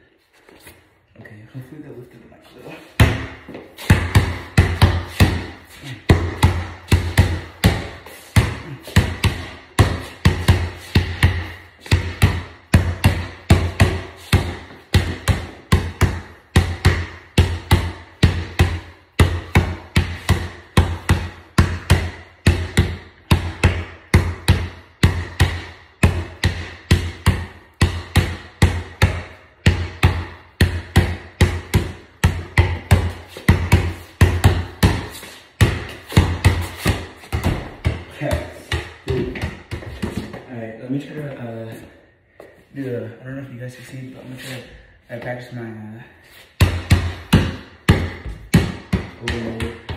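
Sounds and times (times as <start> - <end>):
basketball bouncing on floor: 3.0 - 40.6, 46.6 - 49.9.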